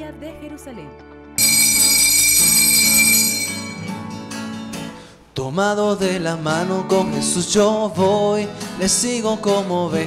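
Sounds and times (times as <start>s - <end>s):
bell-like chime: 1.4s - 4.2s.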